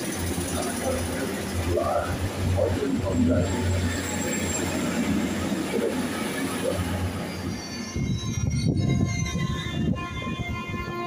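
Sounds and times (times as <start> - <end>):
steady high tones from train: 0.0 - 11.0
train engine rumble: 0.0 - 11.0.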